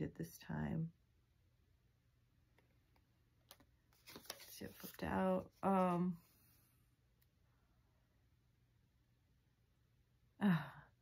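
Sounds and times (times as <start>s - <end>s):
woman sighing: 10.4s - 11.0s.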